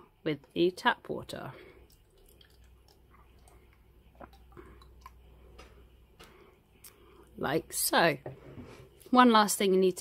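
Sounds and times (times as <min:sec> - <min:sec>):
water trickling into flask: 0:01.3 - 0:05.4.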